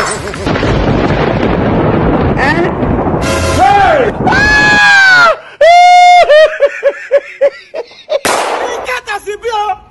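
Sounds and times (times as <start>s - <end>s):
loud explosion sound effect: 0.0s - 4.9s.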